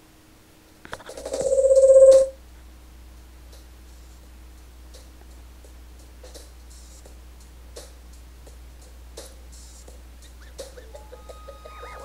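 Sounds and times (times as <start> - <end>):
low steady hum: 0.0 - 12.0
buzzing pulsing electronic tone: 1.2 - 2.4, 10.8 - 12.0.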